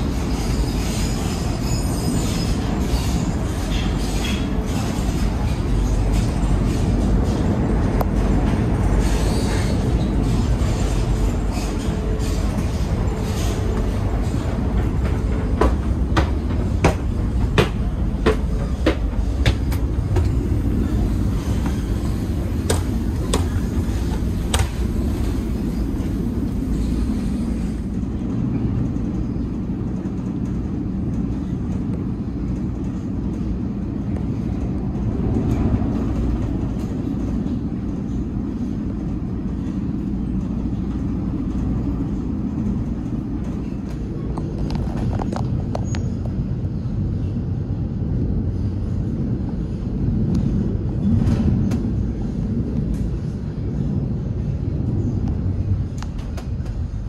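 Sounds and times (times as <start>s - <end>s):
train wheels rumbling: 0.0s - 57.0s.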